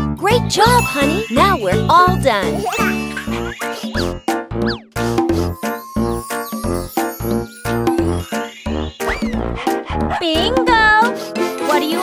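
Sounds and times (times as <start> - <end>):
bouncy children's music: 0.0 - 12.0.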